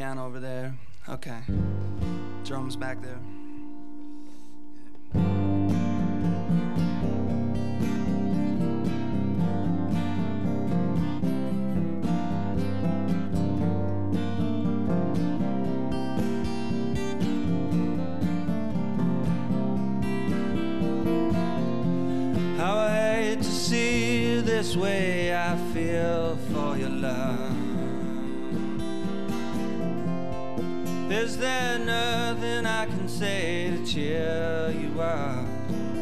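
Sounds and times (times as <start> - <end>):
acoustic guitar strumming: 0.0 - 36.0.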